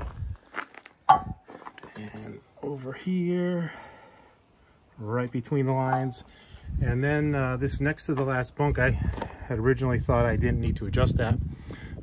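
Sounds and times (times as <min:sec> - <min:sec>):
footsteps on dirt and leaves: 0:00.0 - 0:02.3.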